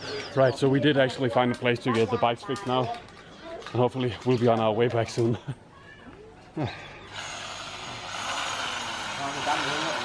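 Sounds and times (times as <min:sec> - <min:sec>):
motor running with hiss: 0:07.1 - 0:10.0.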